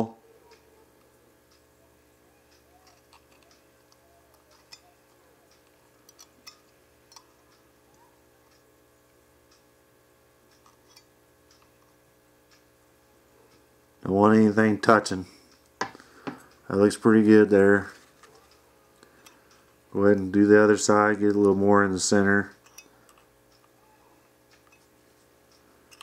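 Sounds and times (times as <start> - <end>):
faint steady hum: 0.0 - 26.0
metal tool tapping wire coils: 2.8 - 7.4, 22.6 - 23.7.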